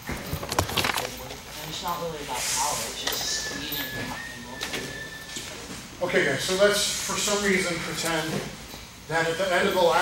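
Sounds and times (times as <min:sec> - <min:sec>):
quiet male voices talking: 0:00.7 - 0:10.0.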